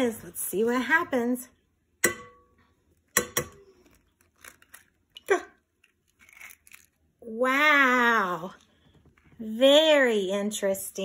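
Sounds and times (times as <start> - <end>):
egg tapping on glass bowl: 2.0 - 2.5
eggshell crackling: 2.9 - 8.0.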